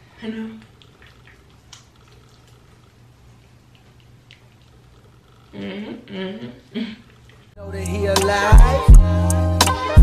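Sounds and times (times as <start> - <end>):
soft wet clicks: 0.6 - 5.5.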